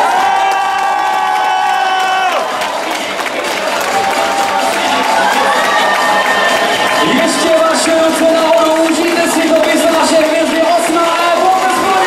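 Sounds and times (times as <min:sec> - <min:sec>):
crowd cheering and shouting: 0:00.0 - 0:12.0.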